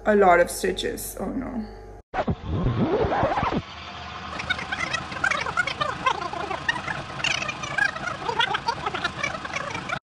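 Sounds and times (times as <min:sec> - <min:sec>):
birds chirping and chattering: 0:04.3 - 0:10.0.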